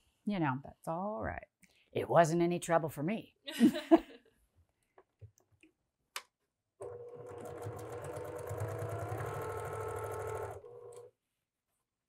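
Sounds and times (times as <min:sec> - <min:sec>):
sewing machine stitching: 0:06.8 - 0:11.1.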